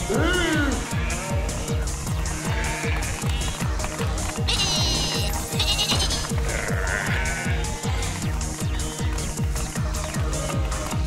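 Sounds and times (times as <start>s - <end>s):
cartoon sheep bleating: 0.0s - 3.5s, 4.4s - 8.2s
upbeat electronic music: 0.0s - 11.0s.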